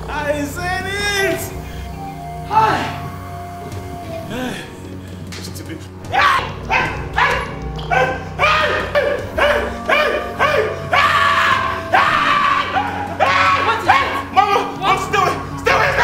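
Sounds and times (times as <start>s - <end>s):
background music: 0.0s - 16.0s
man yelling in terror: 8.4s - 16.0s.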